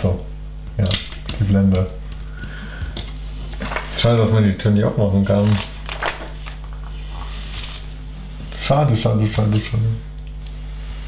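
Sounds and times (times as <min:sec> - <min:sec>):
steady low hum: 0:00.0 - 0:11.0
paper page turning: 0:05.3 - 0:06.9.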